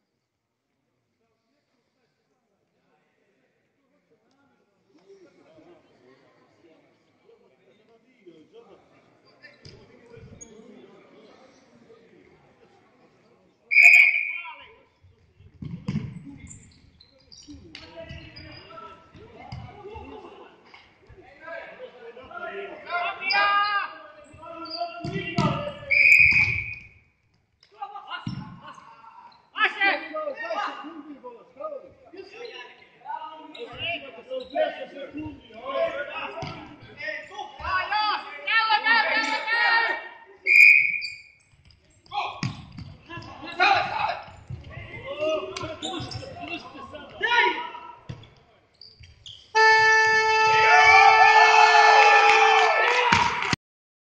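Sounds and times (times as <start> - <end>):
referee's whistle blast: 13.7 - 14.6, 25.8 - 27.0, 40.4 - 41.4, 49.5 - 51.2
scoreboard horn buzzer: 49.6 - 50.7
people shouting: 50.1 - 53.3.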